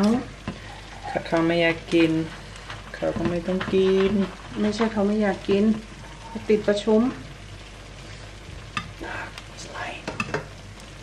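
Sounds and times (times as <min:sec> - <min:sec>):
chicken wings sizzling in a frying pan: 0:00.0 - 0:11.0.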